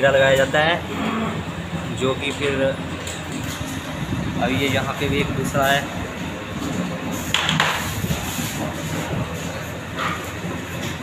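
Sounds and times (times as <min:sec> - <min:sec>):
bakery machinery running: 0:00.0 - 0:11.0.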